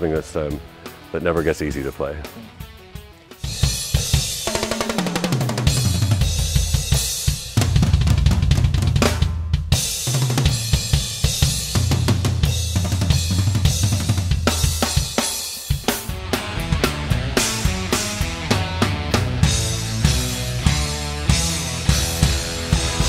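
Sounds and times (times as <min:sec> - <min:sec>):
bass drum beats: 0:01.4 - 0:23.0
bass guitar notes: 0:16.0 - 0:23.0.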